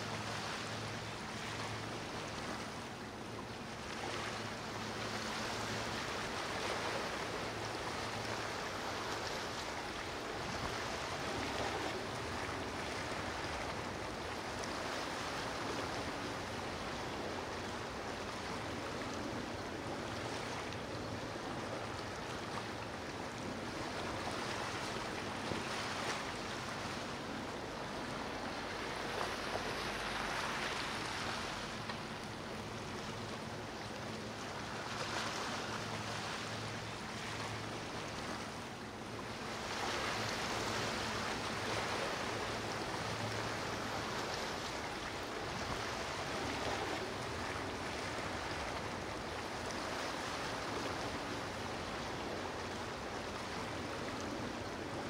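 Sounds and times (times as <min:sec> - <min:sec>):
waves washing: 0:00.0 - 0:55.0.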